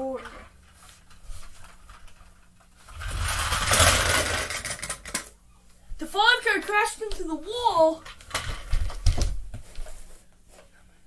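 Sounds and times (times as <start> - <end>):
toy cars rolling on wooden floor: 0.0 - 5.3, 8.0 - 9.0.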